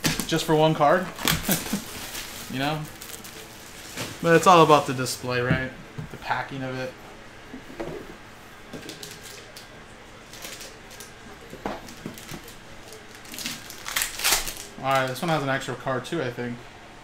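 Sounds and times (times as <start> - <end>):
foil pack crinkling: 0.0 - 5.2, 8.8 - 15.4.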